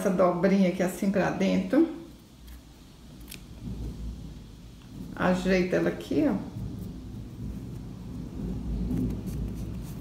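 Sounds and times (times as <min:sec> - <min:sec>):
low steady rumble: 0:00.0 - 0:10.0
fabric rustling: 0:06.5 - 0:10.0.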